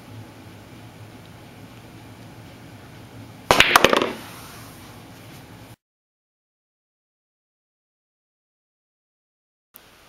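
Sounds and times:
billiard balls clacking: 3.5s - 4.3s
cue tip striking cue ball: 3.5s - 4.3s.

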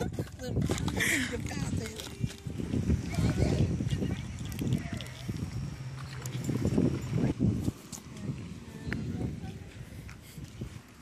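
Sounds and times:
footsteps on pavement: 0.3s - 11.0s.

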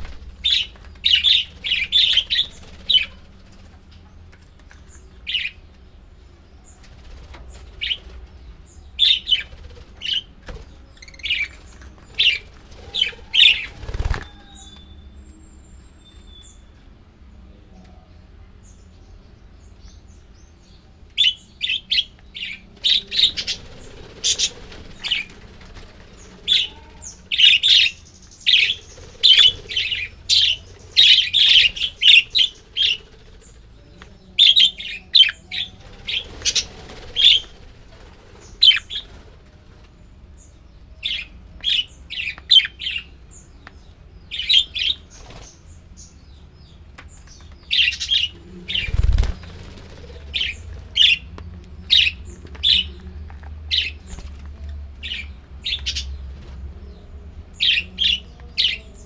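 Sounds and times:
budgerigars chirping: 0.0s - 3.2s, 26.5s - 33.5s
wings fluttering: 0.0s - 5.5s, 6.7s - 14.9s, 22.3s - 40.1s, 44.9s - 45.7s, 47.0s - 56.8s.

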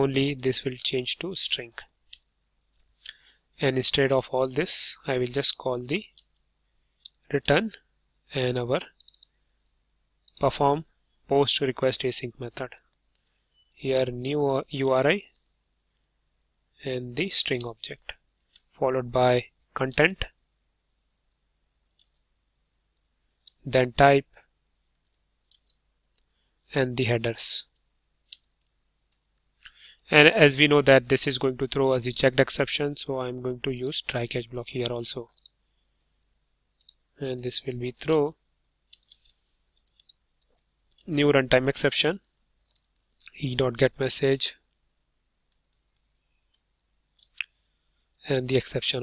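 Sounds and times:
faint keyboard clicks: 36.8s - 41.2s, 45.5s - 48.2s
computer keyboard clicks: 38.9s - 41.1s.

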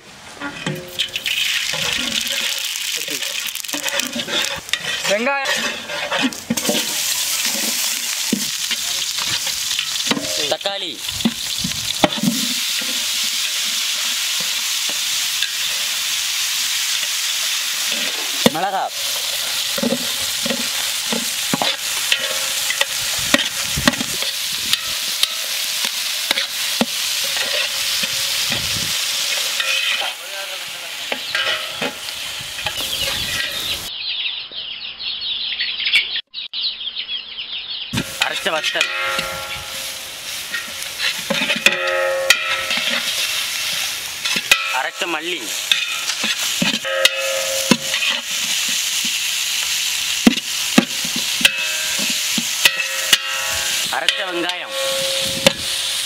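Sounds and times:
metal spatula scraping a pot: 0.4s - 10.5s, 11.1s - 16.0s, 16.8s - 30.2s, 31.0s - 33.7s, 38.0s - 49.2s, 50.2s - 56.0s
vegetables sizzling in hot oil: 0.8s - 33.9s, 38.0s - 56.0s.

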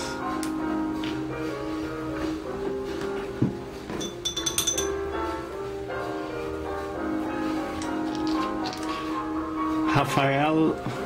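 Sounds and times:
light ringing clinks: 4.0s - 5.0s.

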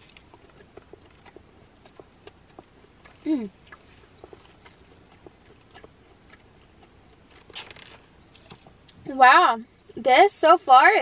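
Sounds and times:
person chewing: 0.0s - 9.0s.

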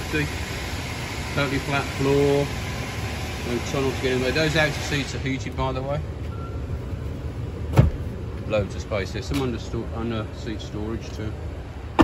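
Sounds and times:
low steady rumble: 0.0s - 12.0s
sharp clunk: 7.7s - 8.0s
seat cushion flipped up: 7.7s - 8.1s.

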